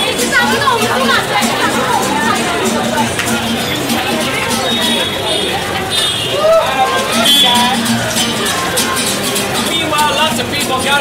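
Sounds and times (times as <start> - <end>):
strummed acoustic guitar: 0.0 - 11.0.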